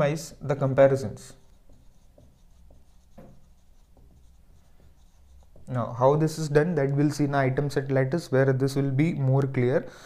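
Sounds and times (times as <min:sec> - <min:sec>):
marker pen writing on whiteboard: 0:00.5 - 0:07.8.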